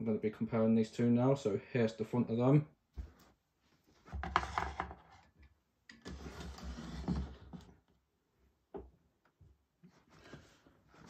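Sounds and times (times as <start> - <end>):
fan stand scraping across desk: 6.0 - 7.7.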